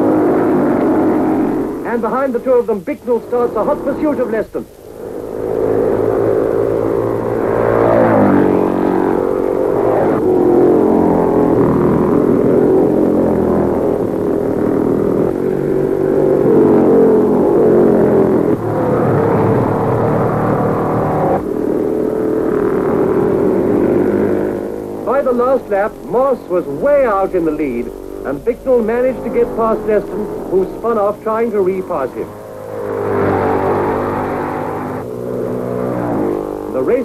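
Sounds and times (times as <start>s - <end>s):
racing car engines at speed: 0.0s - 37.0s.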